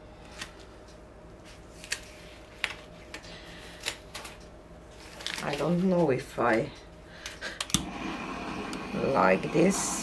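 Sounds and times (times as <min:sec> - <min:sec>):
butane torch hissing: 0:07.7 - 0:10.0.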